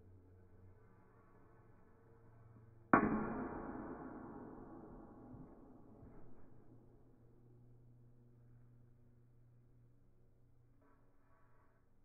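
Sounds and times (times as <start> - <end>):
heavy ringing bang: 3.0 - 5.9.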